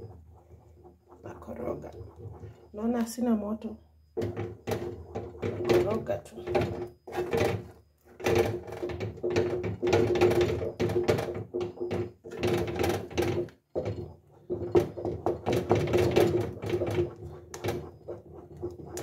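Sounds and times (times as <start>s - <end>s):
wooden spoon scraping metal pot: 0.0s - 19.0s.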